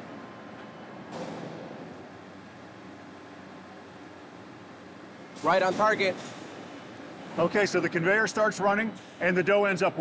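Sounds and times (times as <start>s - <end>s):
machinery hum and hiss: 0.0s - 10.0s.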